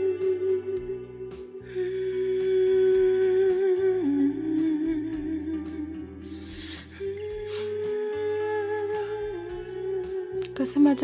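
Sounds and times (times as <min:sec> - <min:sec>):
slow background music: 0:00.0 - 0:11.0.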